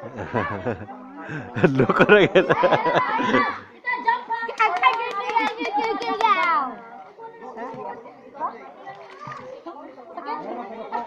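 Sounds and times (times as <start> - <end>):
group of people talking and calling: 0.0 - 11.0.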